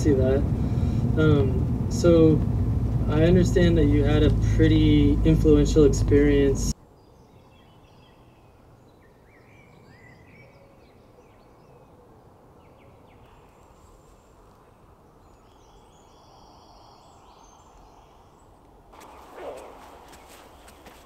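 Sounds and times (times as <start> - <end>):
countryside background hum: 0.0 - 21.0
faint birdsong: 3.1 - 21.0.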